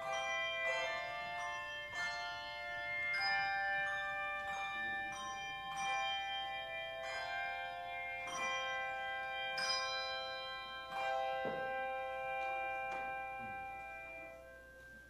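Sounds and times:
handbell choir melody: 0.0s - 15.0s.

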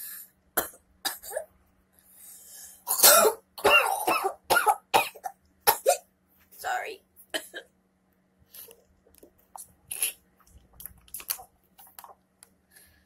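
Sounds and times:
woman coughing: 2.9s - 6.0s, 7.4s - 7.7s.

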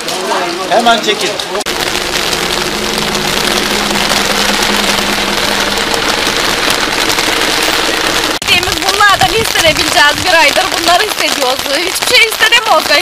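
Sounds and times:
rain hissing: 1.6s - 13.0s.

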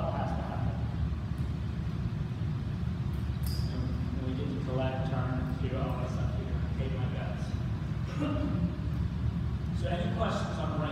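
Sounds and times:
low rumble of room noise: 0.0s - 10.9s.

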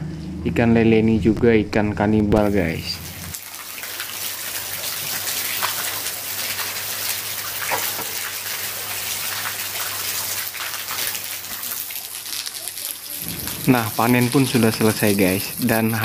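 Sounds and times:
low steady hum: 0.0s - 3.7s
water pouring from pipe into pond: 2.4s - 16.0s.

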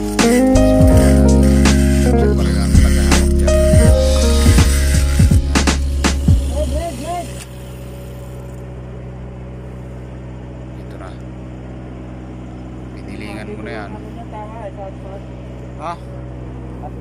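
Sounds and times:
music: 0.0s - 7.4s
low mechanical hum: 0.6s - 17.0s.

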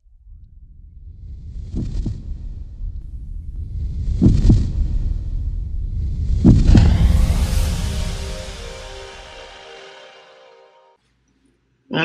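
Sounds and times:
low rumbling drone: 0.0s - 10.9s
heartbeat thumps: 1.1s - 5.1s, 6.3s - 7.0s.

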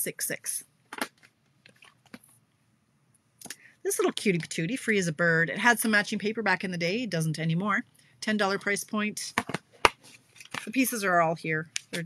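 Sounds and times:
plastic cases clicking and tapping: 9.3s - 10.7s.

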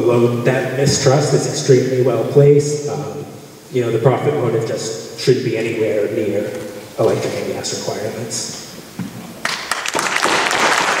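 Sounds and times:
audience applause: 9.4s - 11.0s.

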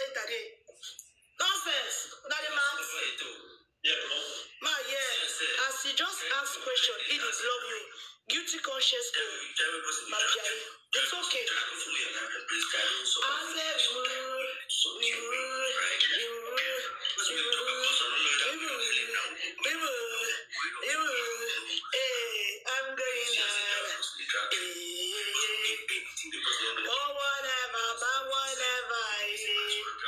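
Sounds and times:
woman talking: 0.0s - 3.0s, 4.4s - 9.3s, 12.8s - 17.0s, 17.6s - 25.8s, 26.8s - 30.0s.

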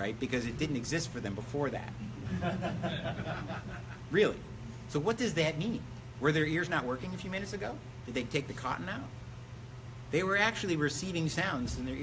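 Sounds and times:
light chuckling laughter: 2.2s - 4.1s.

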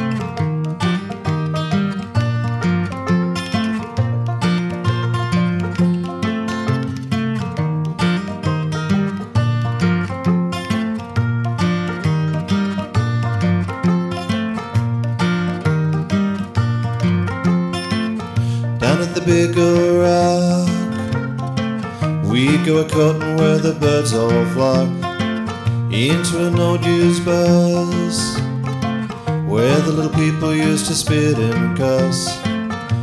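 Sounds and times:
country instrumental with plucked strings: 0.0s - 33.0s.

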